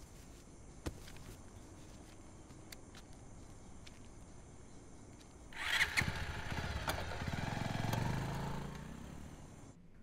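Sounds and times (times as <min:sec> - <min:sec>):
motorcycle engine revving: 0:05.6 - 0:09.8.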